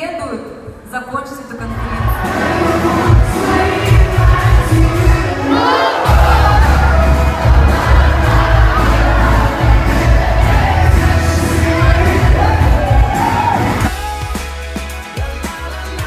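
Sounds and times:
crowd cheering and shouting: 1.6s - 16.0s
live band with heavy bass: 1.8s - 16.0s.

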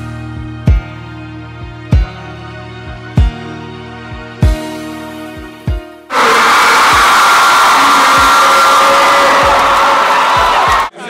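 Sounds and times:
music with heavy kick drum: 0.6s - 1.0s, 1.9s - 2.2s, 3.2s - 3.4s, 4.4s - 4.7s, 5.7s - 5.9s
crowd roaring and cheering: 6.1s - 10.9s.

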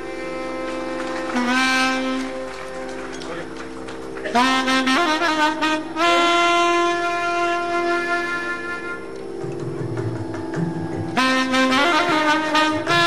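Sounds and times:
alto saxophone: 0.0s - 13.0s.

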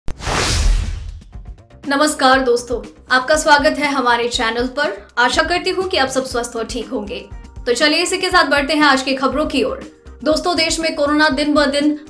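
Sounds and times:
rushing whoosh with low rumble: 0.1s - 1.4s.

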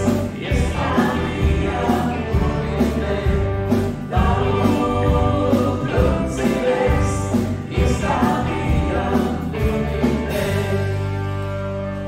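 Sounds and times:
voices singing: 0.0s - 11.3s
live pop-rock band: 0.0s - 12.0s.

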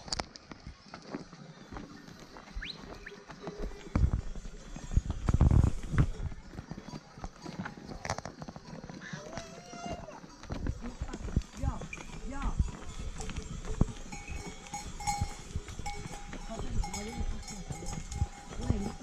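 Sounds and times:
hooves clattering on stones: 0.0s - 19.0s
animal bells ringing: 1.4s - 19.0s
sheep and goats bleating: 8.7s - 19.0s.

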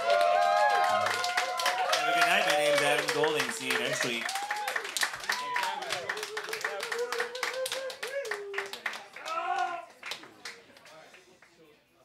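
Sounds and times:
people clapping: 0.0s - 11.7s.

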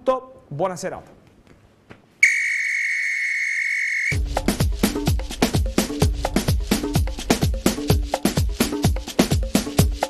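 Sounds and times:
long whistle blast: 2.2s - 4.2s
theme music with drum beat: 4.1s - 10.0s.

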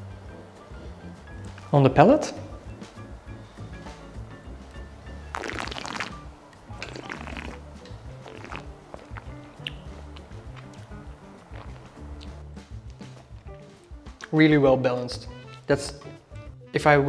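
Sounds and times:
soft background music with beat: 0.0s - 17.0s
wine slurping: 5.2s - 13.5s.

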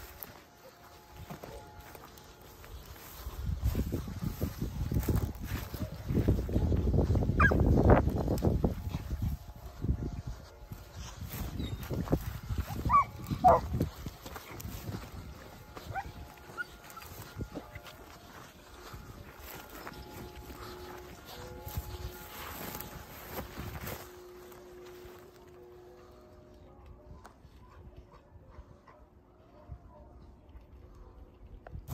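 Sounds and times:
dogs yelping: 7.4s - 7.7s, 12.7s - 13.8s.

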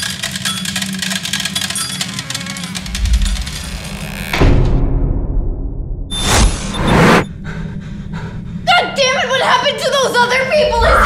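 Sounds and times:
loud whooshing noise: 2.9s - 8.7s
woman panting rapidly: 7.4s - 9.1s.

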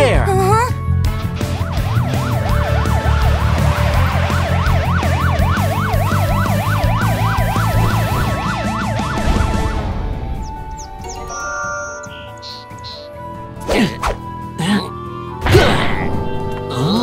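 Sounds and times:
background music: 0.0s - 17.0s
police siren: 1.1s - 11.1s.

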